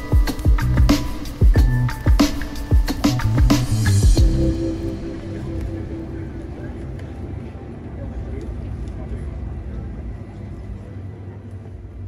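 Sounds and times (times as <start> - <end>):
people talking indistinctly: 0.0 - 10.4
steady low rumble: 0.2 - 12.0.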